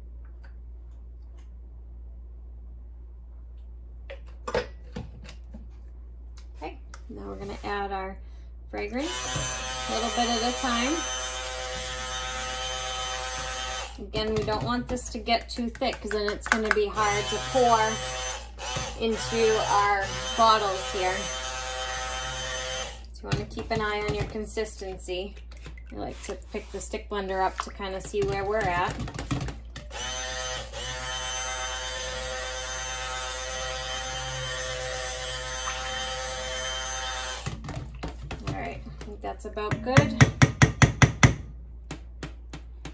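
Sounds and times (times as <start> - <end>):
stick blender motor whine: 9.0 - 14.0, 29.9 - 37.6.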